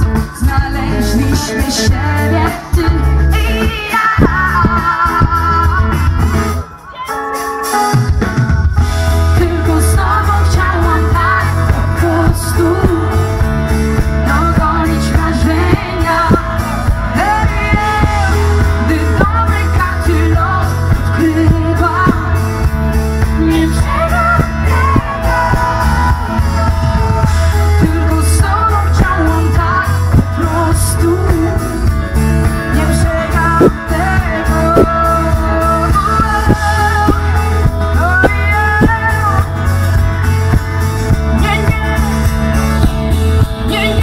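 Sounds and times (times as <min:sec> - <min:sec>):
woman singing: 0:00.0 - 0:07.4, 0:09.1 - 0:39.7, 0:41.1 - 0:44.0
live pop rock band: 0:00.0 - 0:44.0.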